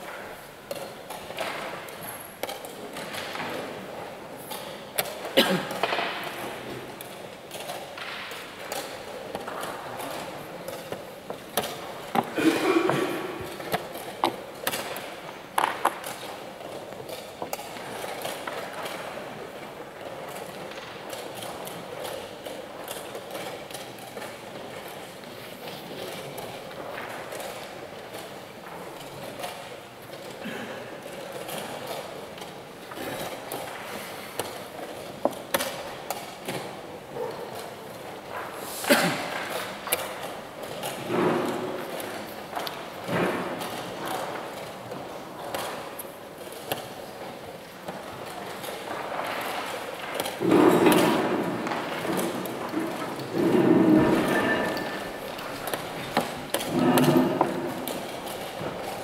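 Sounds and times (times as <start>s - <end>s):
playing hall background noise: 0.0s - 59.0s.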